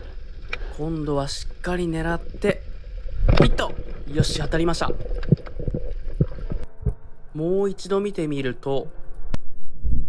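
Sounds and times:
underwater low rumble: 0:00.0 - 0:07.3.

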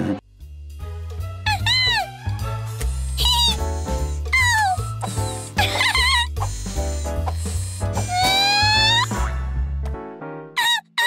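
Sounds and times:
upbeat cartoon music: 0:00.0 - 0:11.0.

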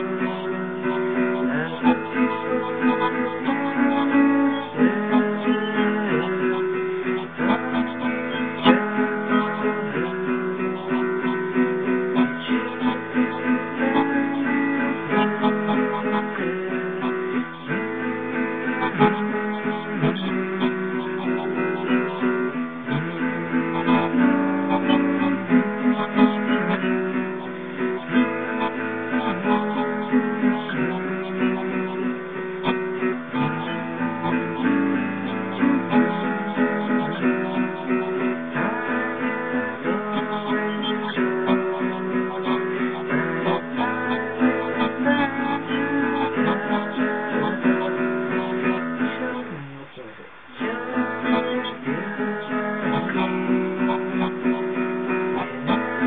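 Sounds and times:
acoustic guitar chords: 0:00.0 - 0:56.0.

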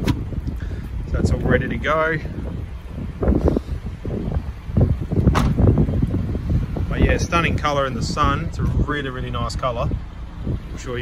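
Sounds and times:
car tailgate slamming shut: 0:00.0 - 0:00.3, 0:05.3 - 0:05.7
wind buffeting microphone: 0:00.0 - 0:11.0.

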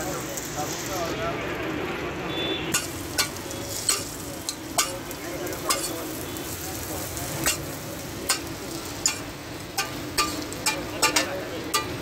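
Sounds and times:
patties sizzling on a griddle: 0:00.0 - 0:12.0
metal spatula clinking on griddle: 0:02.7 - 0:06.2, 0:07.2 - 0:12.0.

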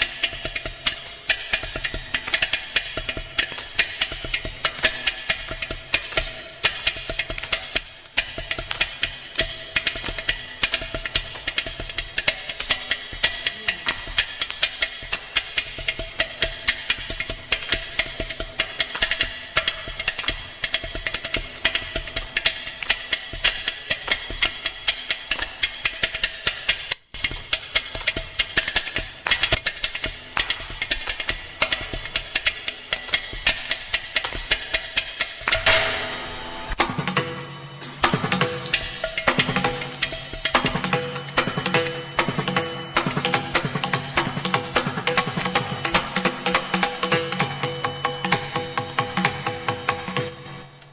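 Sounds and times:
hand drum strokes: 0:00.0 - 0:50.9
steady twanging pitch: 0:35.5 - 0:48.8.

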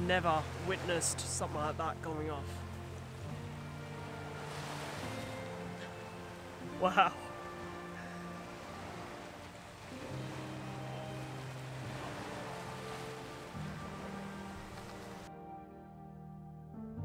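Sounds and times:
slow sustained chord music: 0:00.0 - 0:17.0.

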